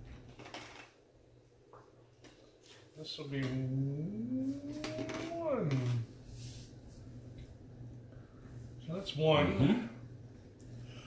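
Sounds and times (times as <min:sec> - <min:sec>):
soft sliding rustle: 0:04.4 - 0:07.2.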